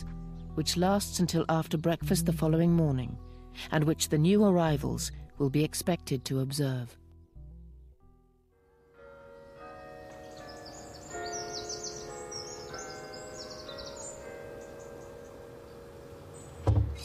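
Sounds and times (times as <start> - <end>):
soft sustained musical notes: 0.0 - 17.0
birds chirping: 9.3 - 17.0
loud thump: 16.6 - 17.0.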